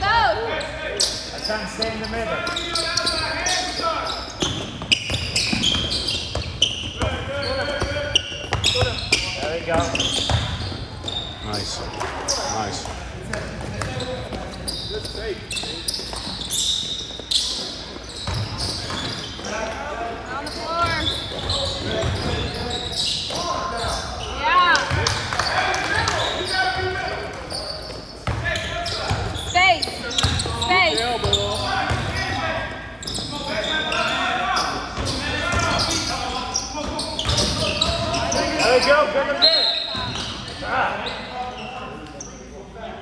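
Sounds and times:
sneakers squeaking: 0:00.0 - 0:42.8
voices of players and spectators: 0:00.0 - 0:43.0
basketball bouncing on court: 0:04.4 - 0:11.3, 0:18.2 - 0:19.2, 0:24.8 - 0:26.3, 0:28.2 - 0:29.5, 0:31.2 - 0:32.2, 0:36.9 - 0:38.2.

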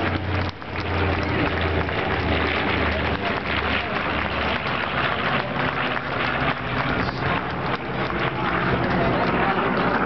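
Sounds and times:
aircraft engines droning overhead: 0:00.0 - 0:10.0
noisy crowd: 0:00.0 - 0:10.0
people clapping: 0:00.0 - 0:10.0.

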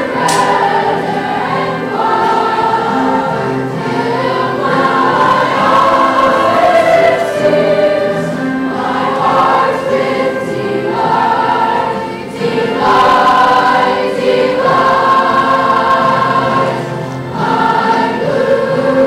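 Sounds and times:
choir singing long notes: 0:00.0 - 0:19.0.

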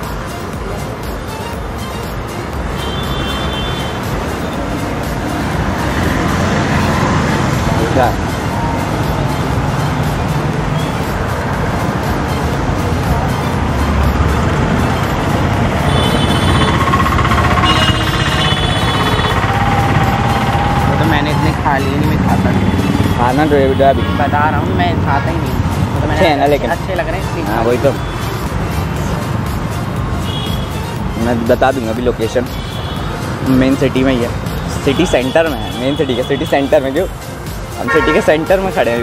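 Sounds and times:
cars passing: 0:00.0 - 0:39.0
motorbikes passing: 0:00.0 - 0:39.0
street traffic: 0:00.0 - 0:39.0
voices: 0:05.3 - 0:29.7, 0:30.6 - 0:39.0
rattling engine: 0:13.9 - 0:23.8.

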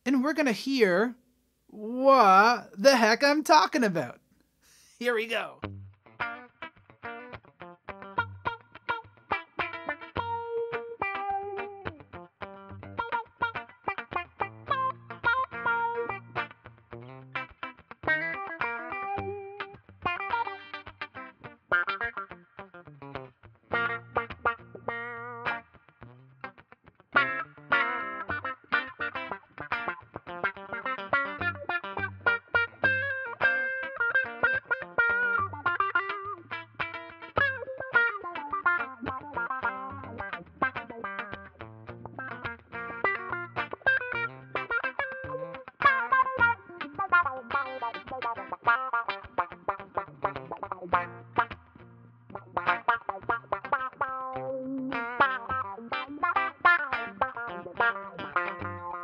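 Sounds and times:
electric guitar with auto-wah: 0:04.7 - 0:59.0.

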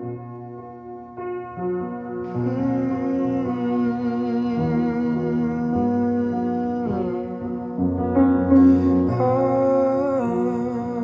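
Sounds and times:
detuned piano chords: 0:00.0 - 0:11.0.

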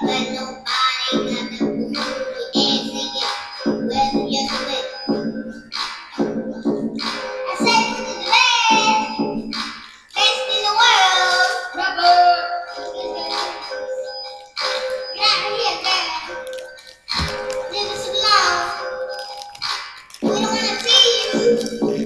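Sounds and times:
high-pitched voice singing: 0:00.0 - 0:05.2, 0:07.5 - 0:09.3, 0:10.0 - 0:13.8, 0:15.2 - 0:19.2, 0:20.2 - 0:22.0.

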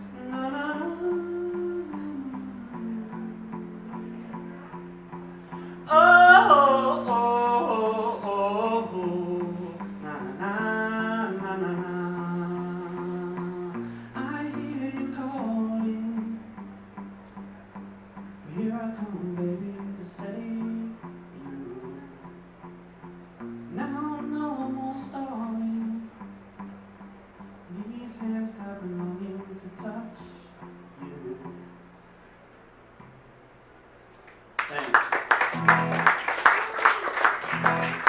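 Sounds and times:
man singing: 0:00.0 - 0:04.8, 0:05.8 - 0:16.6, 0:18.4 - 0:22.3, 0:23.7 - 0:26.2, 0:27.7 - 0:30.4, 0:31.0 - 0:31.8
electric guitar chords: 0:00.0 - 0:34.0, 0:35.3 - 0:38.0.

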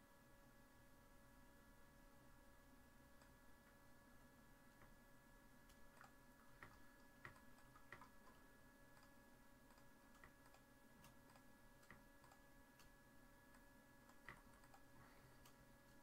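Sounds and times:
faint steady hum: 0:00.0 - 0:16.0
computer mouse and key clicks: 0:05.6 - 0:16.0.

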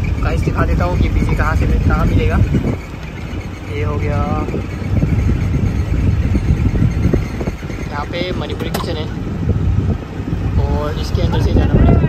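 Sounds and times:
van engine and road rumble: 0:00.0 - 0:12.0.

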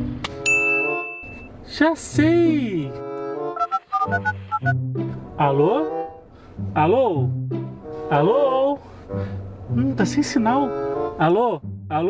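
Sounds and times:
comic music with brass: 0:02.9 - 0:06.3
phone keypad beeps: 0:03.6 - 0:04.8.

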